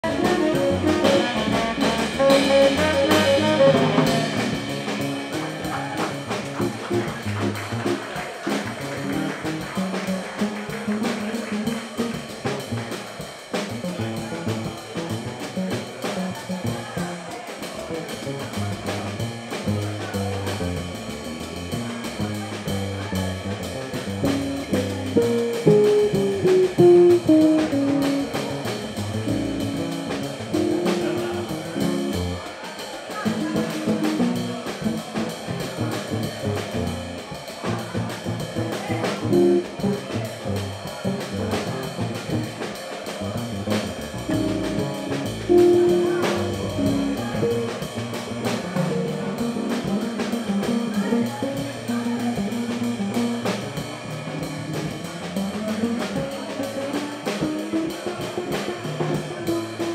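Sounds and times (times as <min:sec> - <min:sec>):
saxophone: 0:00.0 - 0:04.7
electric guitar: 0:00.0 - 0:05.7
double bass: 0:00.0 - 0:32.5, 0:33.2 - 0:59.9
drum kit: 0:00.0 - 0:59.9.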